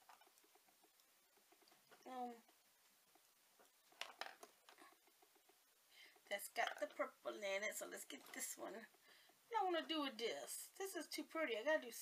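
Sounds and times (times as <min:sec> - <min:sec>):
faint clicks and rustling: 0:00.0 - 0:12.0.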